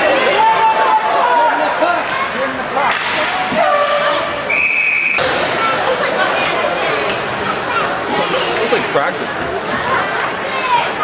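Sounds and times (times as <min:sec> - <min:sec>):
crowd chatter: 0:00.0 - 0:11.0
high whistle tone: 0:04.5 - 0:05.2.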